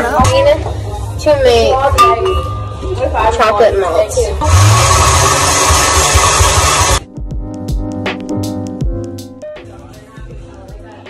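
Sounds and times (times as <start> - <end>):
blender running: 4.4 - 7.0
electronic music with steady beat: 5.8 - 11.0.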